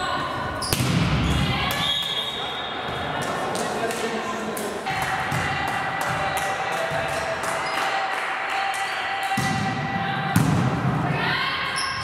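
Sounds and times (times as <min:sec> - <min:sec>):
voices of players: 0:00.0 - 0:12.0.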